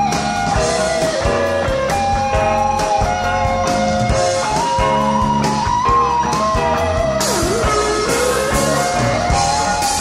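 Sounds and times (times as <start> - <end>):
bass guitar: 0.0 - 10.0
drums: 0.0 - 10.0
lead electric guitar melody: 0.0 - 10.0.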